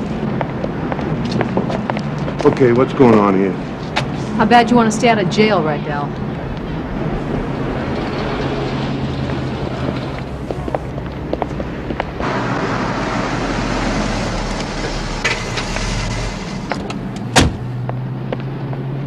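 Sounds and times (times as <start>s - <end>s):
traffic noise: 0.0s - 19.0s
car engine running: 6.1s - 18.4s
car door slamming: 16.7s - 17.7s.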